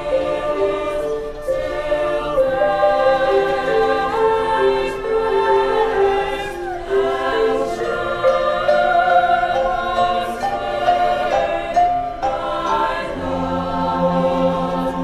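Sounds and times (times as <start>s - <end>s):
choir singing sustained chords: 0.0s - 15.0s.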